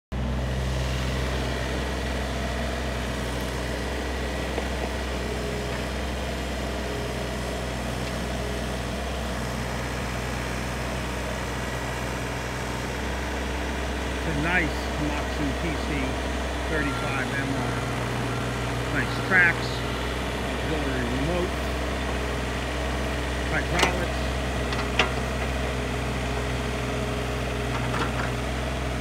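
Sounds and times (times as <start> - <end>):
diesel excavator engine running: 0.1 - 29.0.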